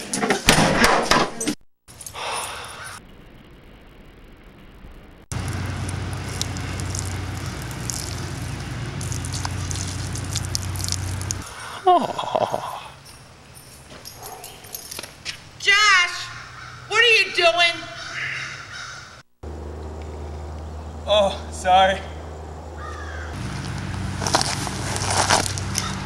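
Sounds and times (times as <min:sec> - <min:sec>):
urine stream splashing: 0:05.3 - 0:11.5.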